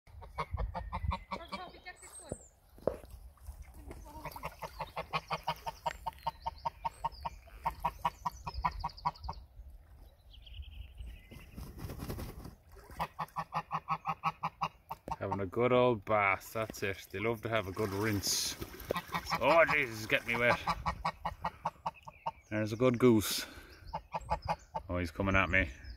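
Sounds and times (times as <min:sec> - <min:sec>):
geese honking: 0:04.2 - 0:09.3, 0:13.0 - 0:15.4, 0:18.9 - 0:22.4.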